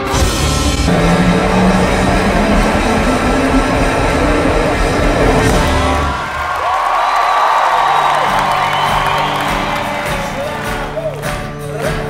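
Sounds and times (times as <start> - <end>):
rock band playing loud: 0.0 - 6.4, 8.2 - 12.0.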